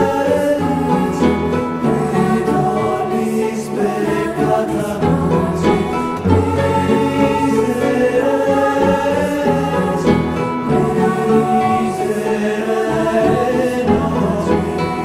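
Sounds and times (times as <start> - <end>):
many voices singing worship song: 0.0 - 15.0.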